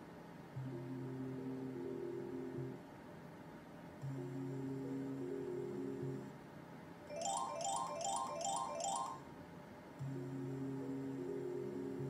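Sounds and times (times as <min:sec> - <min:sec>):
rising chime jingle: 0:07.1 - 0:09.2
slot machine background music: 0:07.1 - 0:09.2.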